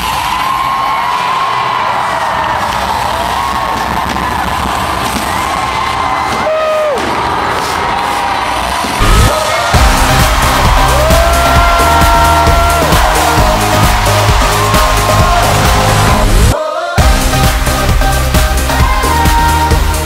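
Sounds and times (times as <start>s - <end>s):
crowd cheering and screaming: 0.0s - 18.0s
bass-heavy music: 9.0s - 20.0s.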